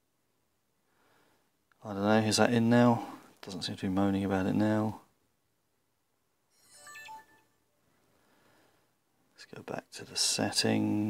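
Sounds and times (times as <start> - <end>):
smartphone electronic chime: 6.5 - 7.6.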